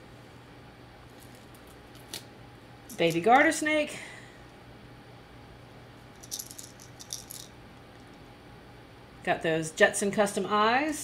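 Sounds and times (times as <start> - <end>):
fishing lure rattle beads clicking: 6.2 - 7.5.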